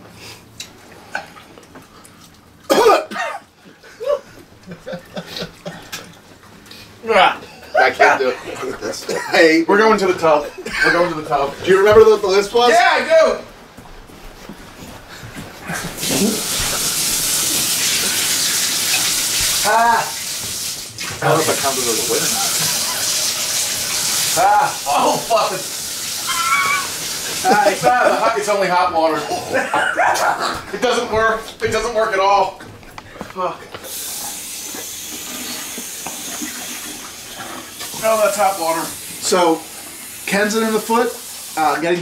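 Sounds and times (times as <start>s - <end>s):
water running from tap: 7.1s - 13.3s, 15.7s - 32.6s, 33.4s - 42.0s
shower spraying into bathtub: 15.6s - 32.6s, 33.4s - 42.0s.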